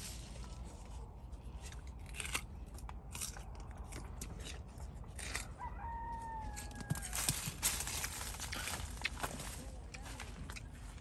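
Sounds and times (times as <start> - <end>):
leaves rustling and crackling: 0.0 - 1.2, 7.1 - 11.0.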